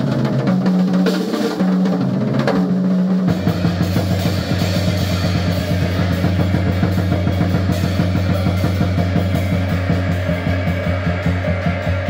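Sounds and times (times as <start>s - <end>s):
drum kit played with sticks: 0.0s - 12.0s
guitar: 2.8s - 12.0s.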